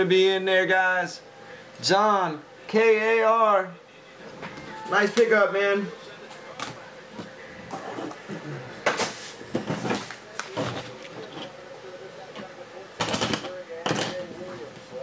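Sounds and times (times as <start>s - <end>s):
faint voices: 2.4s - 15.0s.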